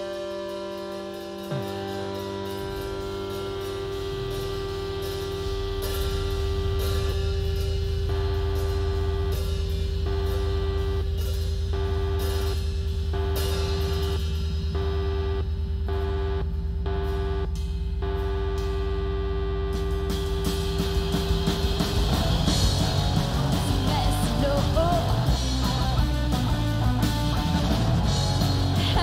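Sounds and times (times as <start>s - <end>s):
punk rock band playing: 0.0s - 15.4s, 19.7s - 29.0s
distorted electric guitar: 0.0s - 29.0s.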